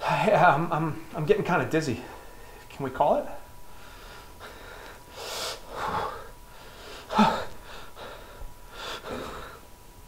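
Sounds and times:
man breathing hard in gasps: 3.7s - 9.7s.

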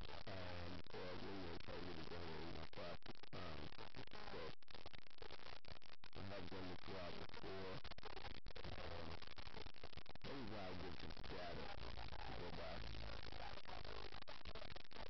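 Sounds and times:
indistinct voice: 10.2s - 14.7s.

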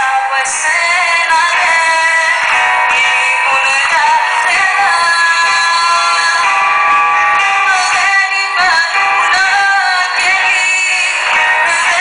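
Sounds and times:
guitars: 0.0s - 12.0s
keyboard: 0.0s - 12.0s
woman singing into microphone: 0.0s - 12.0s.

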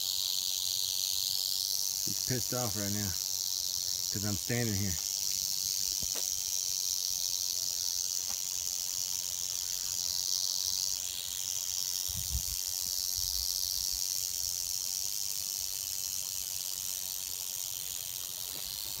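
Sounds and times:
rattlesnake rattling: 0.0s - 19.0s.

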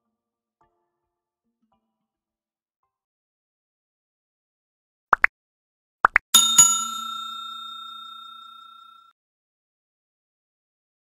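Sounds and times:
notification bell chime: 6.4s - 9.1s.

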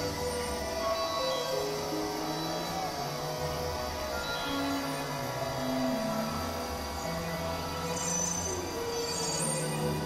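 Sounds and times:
synthesizer drone music: 0.0s - 10.0s.

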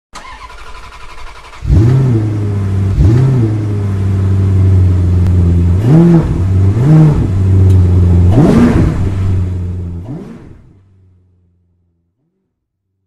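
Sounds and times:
car engine cranking: 0.2s - 10.8s
car engine idling and revving: 0.2s - 12.7s.

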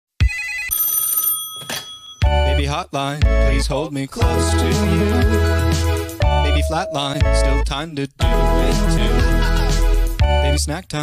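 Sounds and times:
telephone bell ringing: 0.2s - 2.4s, 6.2s - 7.4s.

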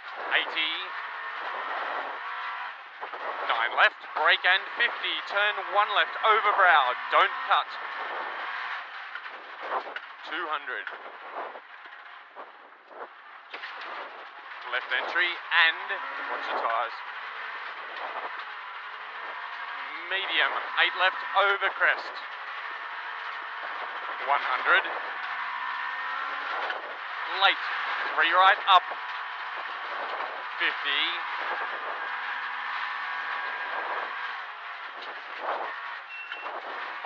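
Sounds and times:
gravel road noise: 0.0s - 37.0s
rally car engine: 0.0s - 37.0s.

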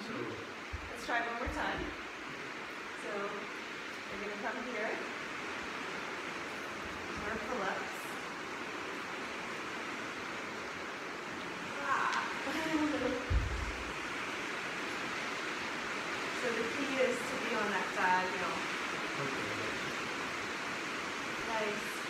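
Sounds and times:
steady background hiss: 0.0s - 22.0s
low thump: 0.7s - 1.9s, 13.3s - 13.9s.

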